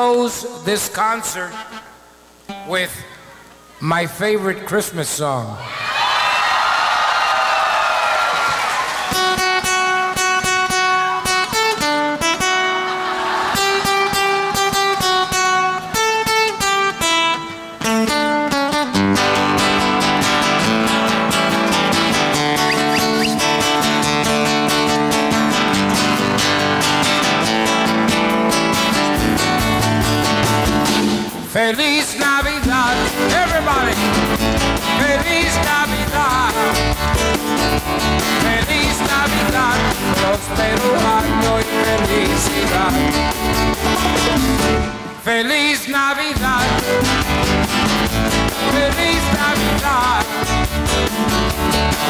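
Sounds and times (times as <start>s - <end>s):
acoustic guitar picking: 1.4s - 3.5s, 9.1s - 45.4s, 46.3s - 52.0s
audience cheering: 5.6s - 9.7s, 13.0s - 14.7s
low bass notes: 32.7s - 45.2s, 46.4s - 52.0s.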